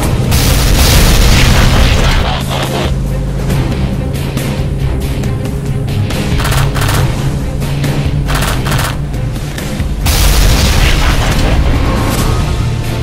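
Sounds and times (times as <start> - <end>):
background music: 0.0 - 13.0
rapid gunfire: 0.3 - 2.9, 6.3 - 7.2, 8.3 - 9.0.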